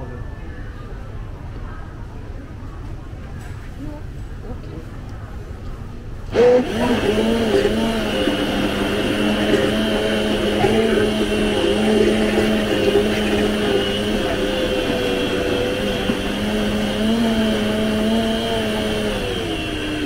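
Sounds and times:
blender motor whine: 6.3s - 20.0s.

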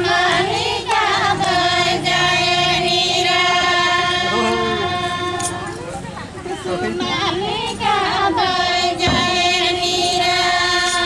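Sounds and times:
women singing together: 0.0s - 11.0s.

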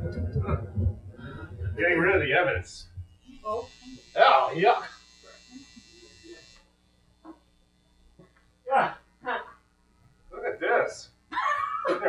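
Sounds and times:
faint electrical hum and hiss: 0.0s - 12.0s.

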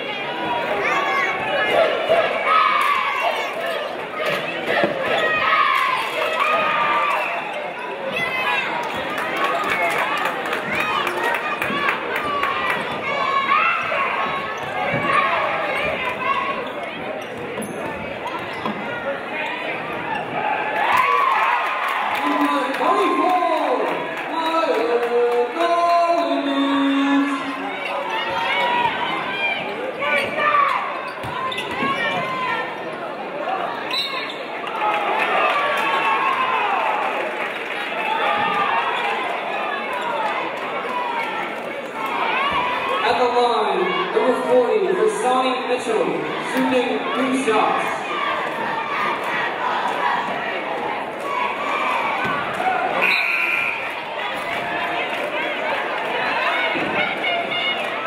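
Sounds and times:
crowd and players calling out: 0.0s - 58.0s.

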